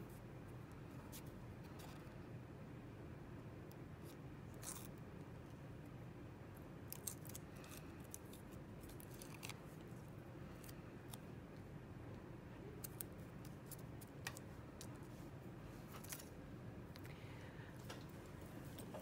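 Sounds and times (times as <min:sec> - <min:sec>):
low steady room hum: 0:00.0 - 0:19.0.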